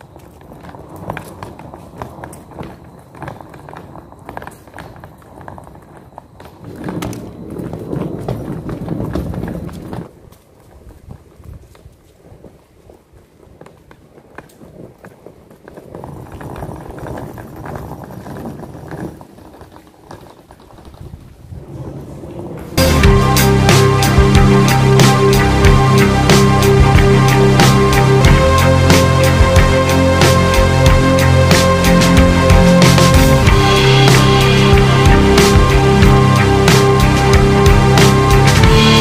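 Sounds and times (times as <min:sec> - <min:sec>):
footsteps: 0:00.0 - 0:39.0
suitcase wheels clattering on pavement: 0:00.0 - 0:39.0.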